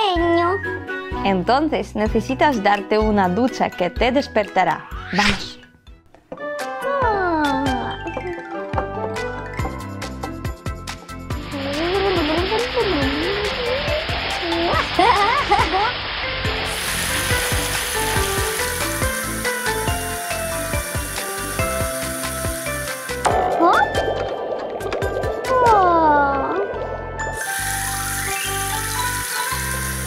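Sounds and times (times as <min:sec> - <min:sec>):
cheerful background music: 0:00.0 - 0:30.0
shower water spraying: 0:11.3 - 0:23.4, 0:27.3 - 0:30.0.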